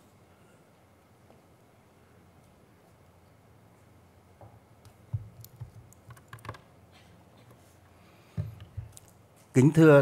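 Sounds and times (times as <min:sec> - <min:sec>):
low room hum: 0:00.0 - 0:10.0
microphone handling clicks and knocks: 0:08.3 - 0:09.1.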